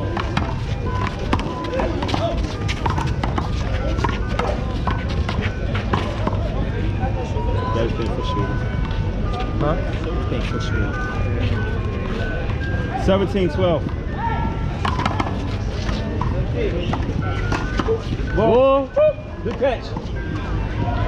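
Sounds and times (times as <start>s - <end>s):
footsteps on court: 0.1s - 6.5s.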